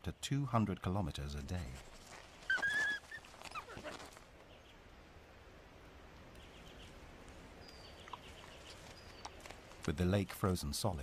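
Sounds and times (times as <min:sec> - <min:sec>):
wolves whining softly: 0:02.4 - 0:04.2.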